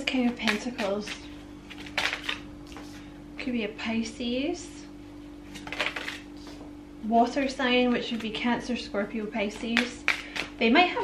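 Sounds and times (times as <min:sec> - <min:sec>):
steady low hum: 0:00.0 - 0:11.0
paper cards rustling and snapping: 0:00.1 - 0:02.9, 0:05.5 - 0:06.6, 0:09.5 - 0:10.6.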